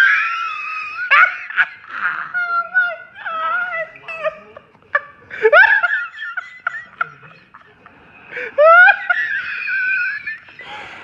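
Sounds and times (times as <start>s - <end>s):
high-pitched laughter: 0.0s - 7.8s, 8.4s - 10.6s.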